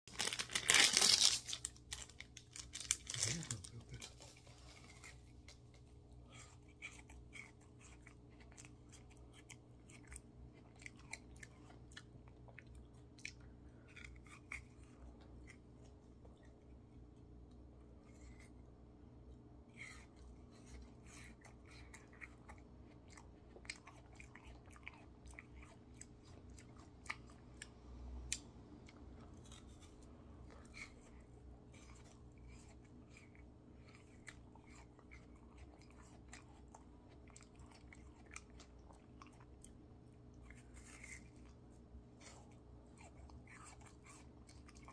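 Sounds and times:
plastic wrapper crinkling and tearing: 0.1 - 4.5
person chewing: 0.1 - 18.7, 19.3 - 44.9.

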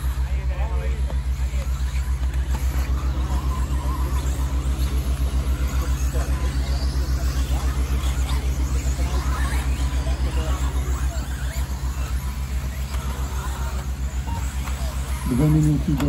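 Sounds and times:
low throbbing hum: 0.0 - 16.0
rc car motors whining: 0.0 - 16.0.

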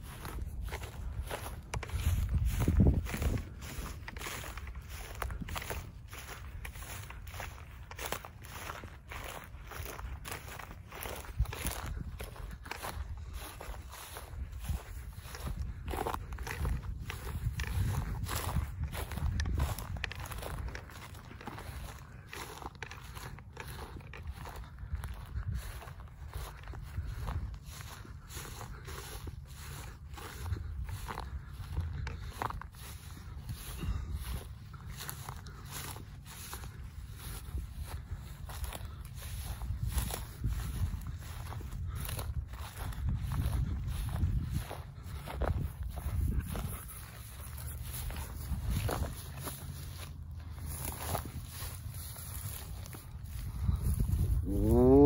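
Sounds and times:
footsteps crunching through dry grass: 0.0 - 55.0.

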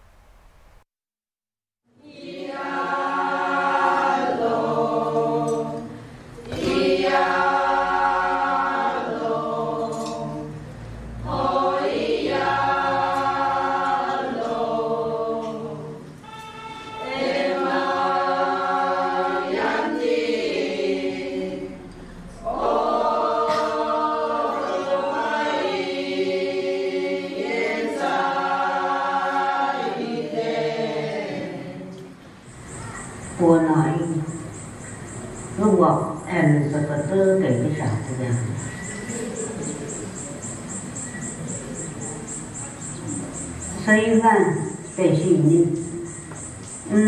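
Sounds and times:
women singing unaccompanied: 1.9 - 10.6, 11.2 - 16.1, 17.0 - 32.2.

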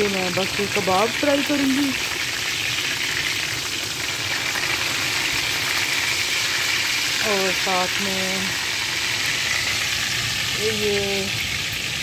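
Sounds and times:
patties sizzling in hot oil: 0.0 - 12.0.

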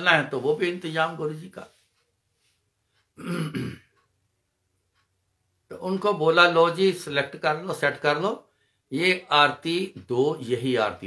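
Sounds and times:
man clearing his throat: 3.2 - 4.0.

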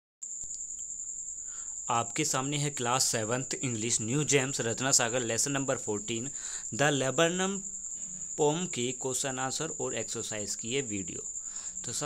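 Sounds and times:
man's voice: 1.9 - 7.6, 8.4 - 11.2.

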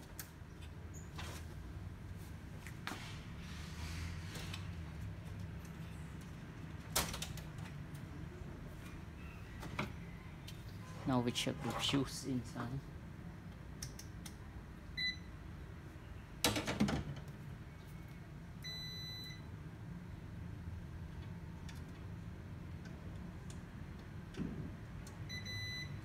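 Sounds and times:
multimeter continuity beeps: 15.0 - 15.3, 18.6 - 19.5, 25.3 - 26.0.

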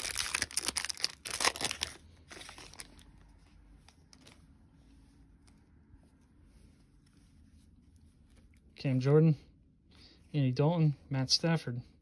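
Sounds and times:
foil wrapper tearing and crinkling: 0.0 - 3.0.

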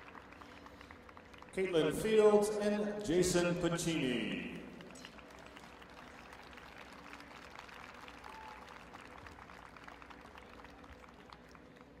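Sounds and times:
audience clapping: 0.0 - 2.2, 4.7 - 12.0.

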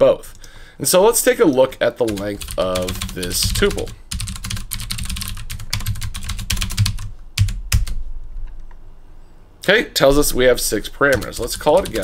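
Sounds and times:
typing on computer keyboard: 2.1 - 8.0, 11.1 - 12.0.

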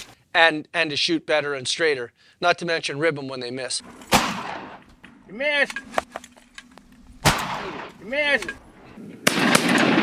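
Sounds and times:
shotgun blast with echo: 4.1 - 4.8, 7.2 - 8.0, 9.2 - 10.0.

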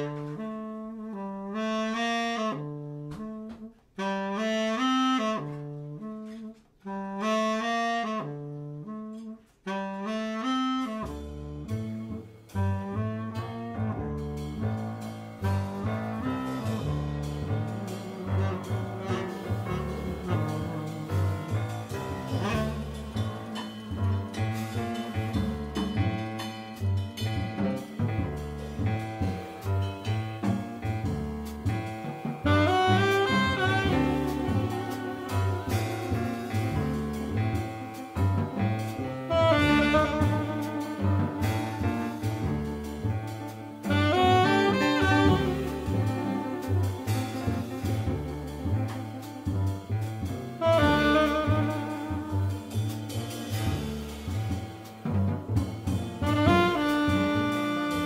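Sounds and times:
tenor saxophone playing: 0.0 - 54.8, 55.6 - 58.0
double bass: 0.0 - 58.0
jazz drums: 0.0 - 58.0
jazz piano: 0.0 - 58.0.

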